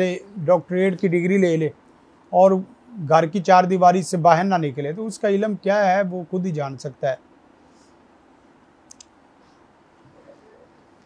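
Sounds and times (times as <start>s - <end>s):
faint quick clicks: 8.9s - 9.2s.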